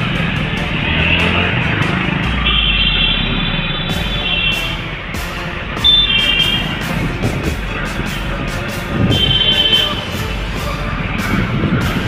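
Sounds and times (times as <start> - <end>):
high-pitched multi-tone sound: 0.0 - 11.8
motorcycle and car engines: 0.0 - 12.0.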